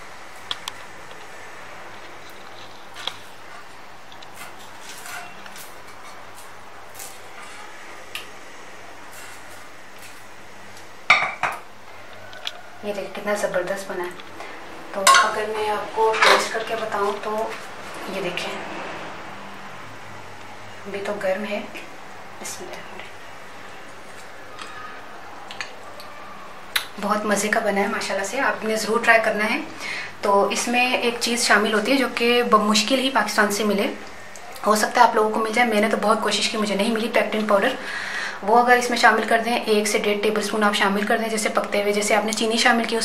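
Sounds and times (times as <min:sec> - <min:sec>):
steady low hiss: 0:00.0 - 0:43.0
pot clattering onto trivet: 0:15.1 - 0:15.4.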